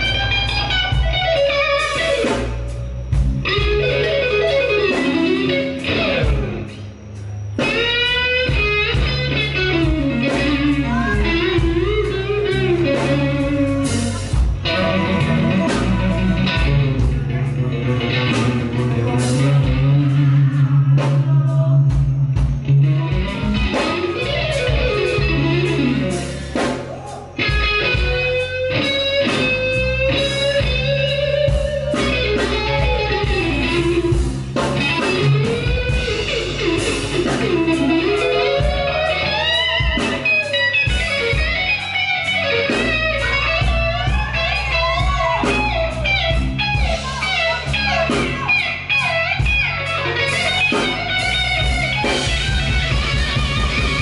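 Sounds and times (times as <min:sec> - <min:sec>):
bass guitar: 0:00.0 - 0:54.0
drums: 0:00.0 - 0:54.0
electric guitar lead with bends: 0:00.0 - 0:54.0.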